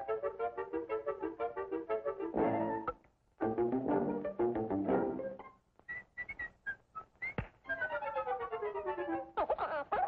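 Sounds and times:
high whistle-like chirps: 0:05.9 - 0:07.5.

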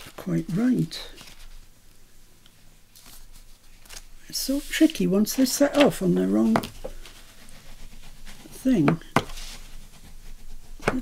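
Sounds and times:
bone folder rubbing cardstock: 0:04.5 - 0:11.0.

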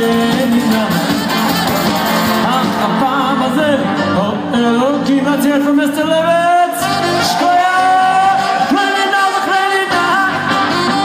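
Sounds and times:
live band with singing: 0:00.0 - 0:11.0.

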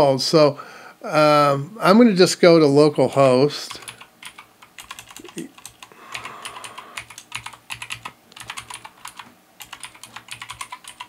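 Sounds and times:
keyboard typing: 0:03.1 - 0:11.0.

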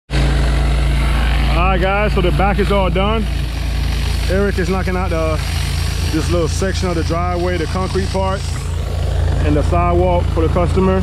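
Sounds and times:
pressure washer engine hum: 0:00.1 - 0:11.0
water spray hissing on concrete: 0:02.1 - 0:08.8.

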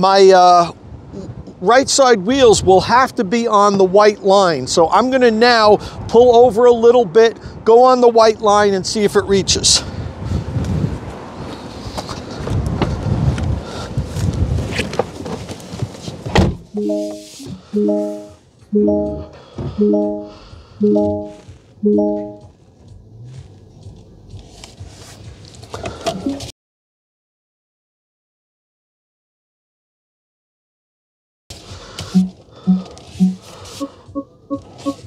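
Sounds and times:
wind buffeting microphone: 0:09.5 - 0:15.0
car door shutting: 0:16.2 - 0:16.7
car warning chime: 0:16.8 - 0:22.5, 0:32.2 - 0:35.0.

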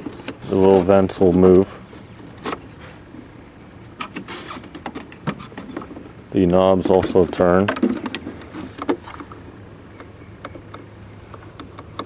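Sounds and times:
air vents clicking and scraping: 0:00.0 - 0:12.0.

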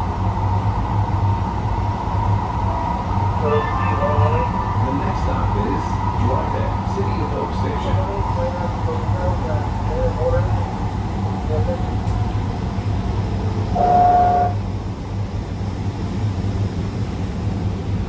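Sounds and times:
train running low rumble: 0:00.0 - 0:18.0
train horn toot: 0:13.7 - 0:14.6.

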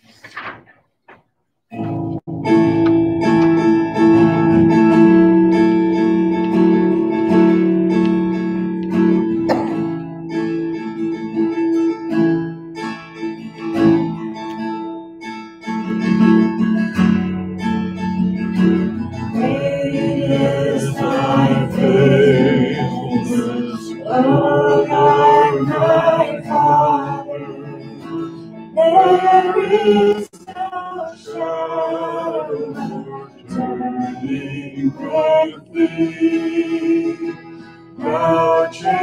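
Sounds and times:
acoustic guitar strumming chords: 0:01.7 - 0:39.0
people singing a hymn: 0:19.3 - 0:39.0.

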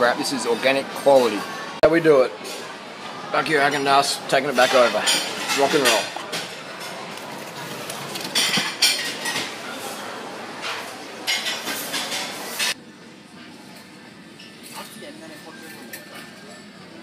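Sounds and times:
plastic trays clinking: 0:07.1 - 0:09.5.

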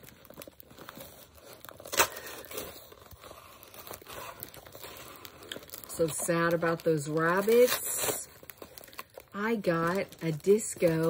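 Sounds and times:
tearing and crinkling: 0:00.0 - 0:11.0.

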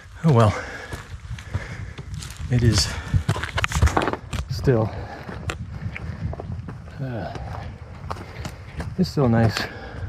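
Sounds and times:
footsteps on forest trail: 0:00.0 - 0:10.0
low rumble of wind on microphone: 0:00.0 - 0:10.0.

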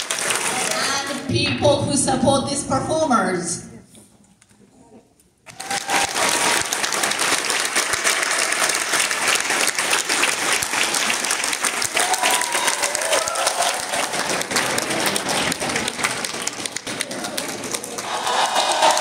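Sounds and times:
audience applauding: 0:00.0 - 0:01.3, 0:05.5 - 0:19.0.

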